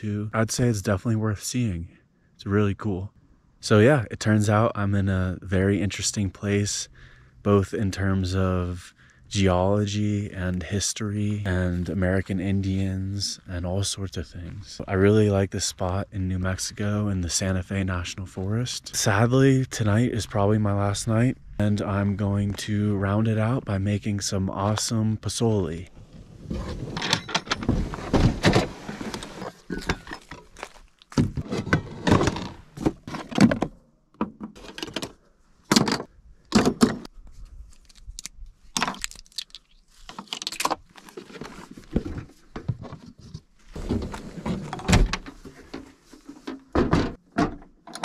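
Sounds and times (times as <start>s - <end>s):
camp cooking gear being handled: 26.4s - 33.4s, 36.8s - 47.2s.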